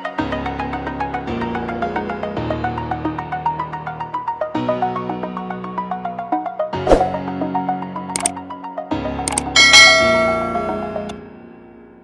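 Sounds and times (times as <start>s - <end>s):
background music: 0.0s - 12.0s
sharp mouse clicks: 9.3s - 9.5s
notification bell ringing: 9.4s - 11.0s.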